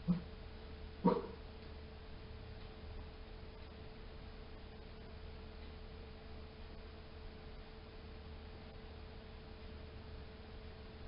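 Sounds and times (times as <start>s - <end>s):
dog barking: 0.0s - 0.2s, 1.0s - 1.4s
faint steady hum: 0.0s - 11.0s.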